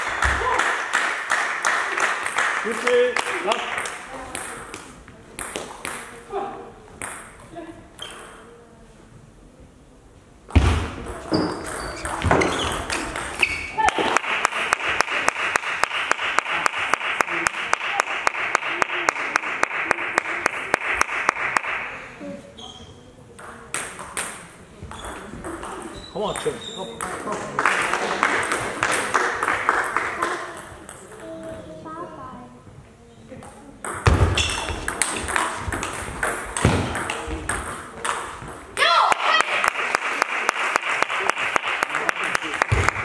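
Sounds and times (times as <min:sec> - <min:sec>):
rhythmic clapping: 0:00.0 - 0:04.1, 0:13.8 - 0:21.9, 0:39.1 - 0:43.0.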